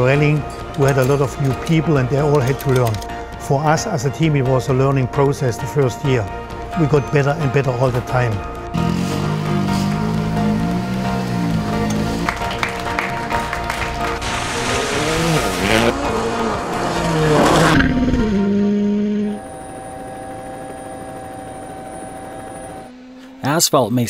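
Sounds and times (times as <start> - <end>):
background music: 0.0 - 23.9
rally car passing at speed: 8.7 - 19.4.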